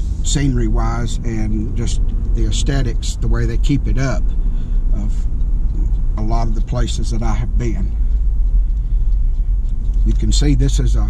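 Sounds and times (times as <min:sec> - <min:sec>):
car driving rumble from inside: 0:00.0 - 0:11.0.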